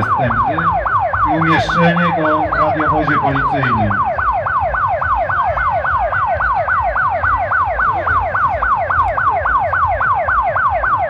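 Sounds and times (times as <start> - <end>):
police siren fast yelp: 0.0 - 11.0.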